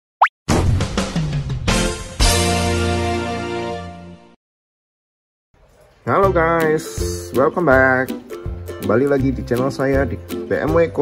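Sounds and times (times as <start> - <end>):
jingle music with percussive hits: 1.2 - 3.2.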